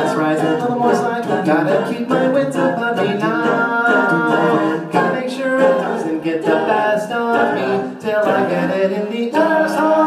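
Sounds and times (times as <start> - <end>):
a cappella group singing: 0.0 - 10.0.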